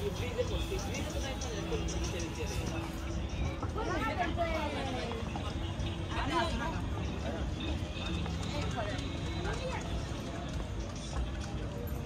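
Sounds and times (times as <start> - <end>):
footsteps on stone paving: 0.0 - 12.0
people talking in a crowd: 0.0 - 12.0.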